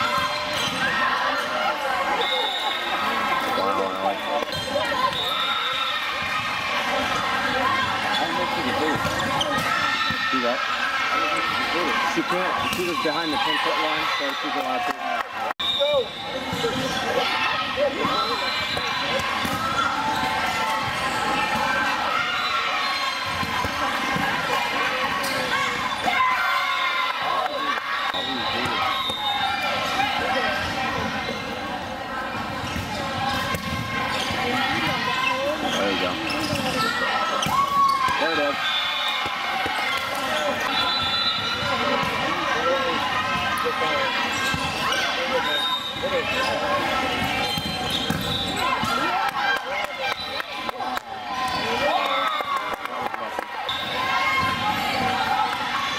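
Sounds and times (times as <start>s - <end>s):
people calling out and chattering: 0.0s - 55.9s.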